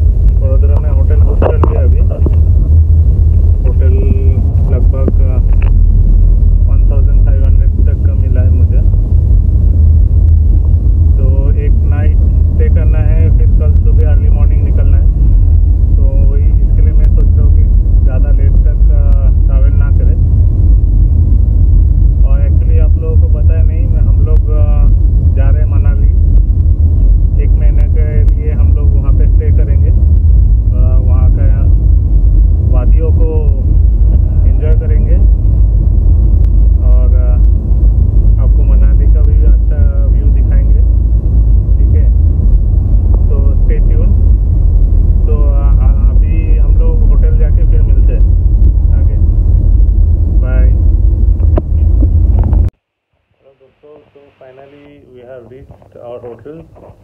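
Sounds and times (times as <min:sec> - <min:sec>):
car cabin rumble: 0:00.0 - 0:52.8
man talking: 0:00.4 - 0:02.4, 0:03.6 - 0:05.7, 0:06.6 - 0:08.9, 0:11.1 - 0:20.2, 0:22.2 - 0:26.2, 0:27.4 - 0:30.0, 0:30.7 - 0:31.8, 0:32.7 - 0:35.3, 0:36.8 - 0:37.5, 0:38.4 - 0:40.9, 0:41.7 - 0:42.1, 0:43.2 - 0:44.2, 0:45.2 - 0:48.3, 0:48.9 - 0:49.2, 0:50.4 - 0:50.8, 0:53.4 - 0:57.0.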